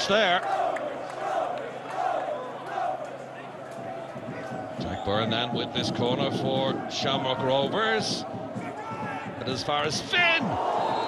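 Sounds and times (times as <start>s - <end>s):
stadium crowd voices: 0.0s - 11.0s
people shouting: 8.5s - 9.4s.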